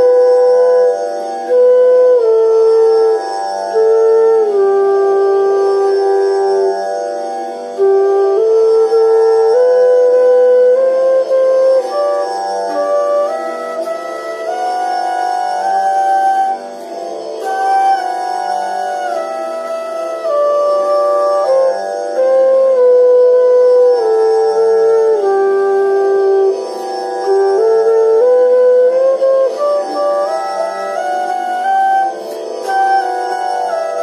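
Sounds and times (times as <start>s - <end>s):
bamboo flute playing scale: 0.0s - 34.0s.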